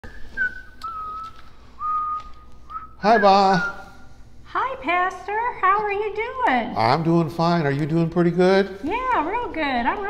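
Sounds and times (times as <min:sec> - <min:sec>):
person whistling a slow tune: 0:00.0 - 0:04.0.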